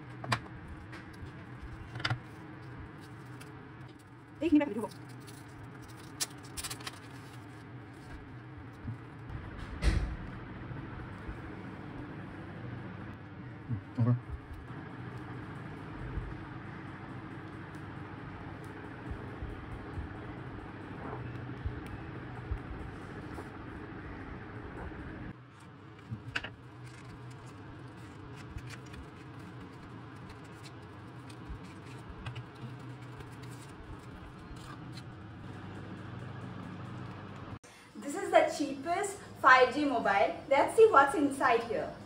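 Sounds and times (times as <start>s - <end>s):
low background hum: 0.0s - 42.0s.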